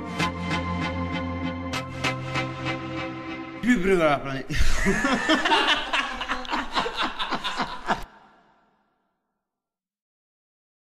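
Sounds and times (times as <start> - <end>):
person laughing: 4.5 - 8.3.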